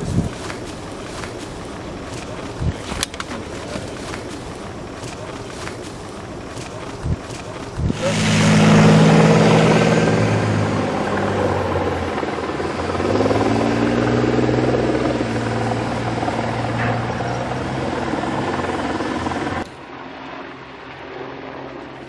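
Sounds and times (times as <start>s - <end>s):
heavy engines droning: 0.0s - 22.0s.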